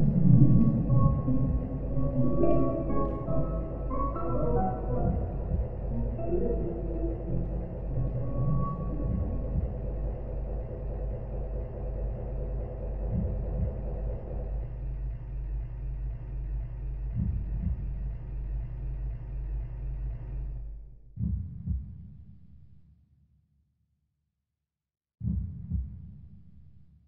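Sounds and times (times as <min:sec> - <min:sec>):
deep heartbeat-like thumps: 0:00.0 - 0:18.6, 0:21.1 - 0:22.4, 0:25.2 - 0:26.6
low droning horror score: 0:00.0 - 0:20.6.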